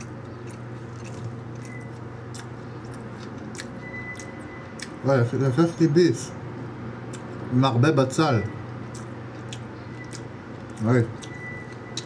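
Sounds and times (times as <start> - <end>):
person chewing food: 0.0 - 5.0, 7.0 - 7.5, 8.8 - 12.0
steady low hum: 0.0 - 12.0.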